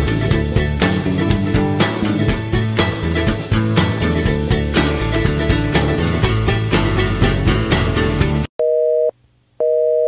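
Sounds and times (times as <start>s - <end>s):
music: 0.0s - 8.5s
telephone busy signal beeps: 8.6s - 10.0s.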